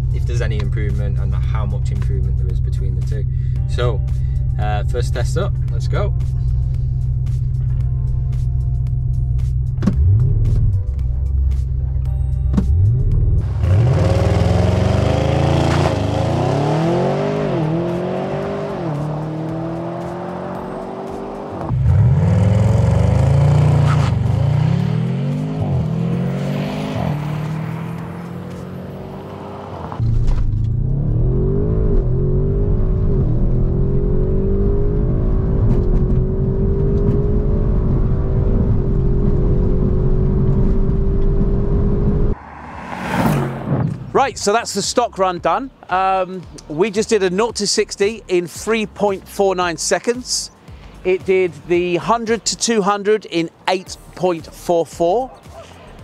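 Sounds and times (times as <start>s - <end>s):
car engine accelerating hard: 12.8s - 44.1s.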